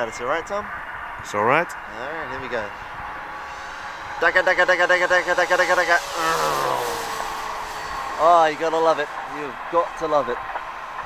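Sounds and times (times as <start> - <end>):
electric motor whine: 2.0 - 9.6
man imitating engine noise: 4.9 - 7.6.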